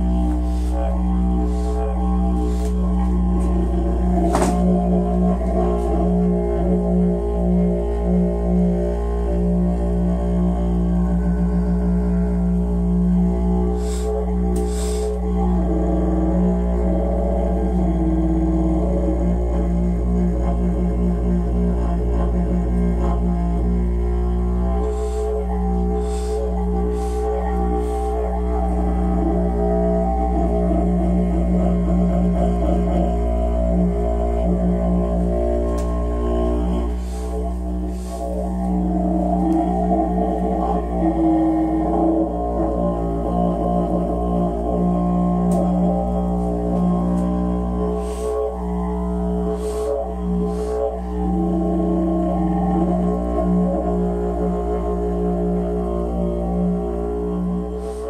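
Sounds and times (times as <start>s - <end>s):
didgeridoo drone: 0.0s - 58.0s
sharp didgeridoo accents: 0.0s - 58.0s.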